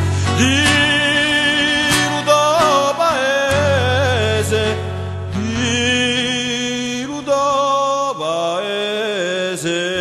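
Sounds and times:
man singing long notes: 0.0 - 10.0.

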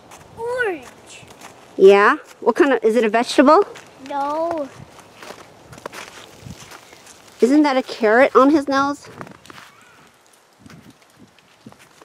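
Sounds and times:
footsteps on snow: 0.0 - 2.7, 3.6 - 12.0.

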